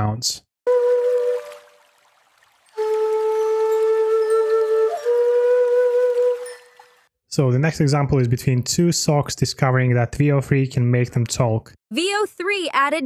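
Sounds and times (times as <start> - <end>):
flute playing held notes: 0.7 - 1.8, 2.8 - 7.0.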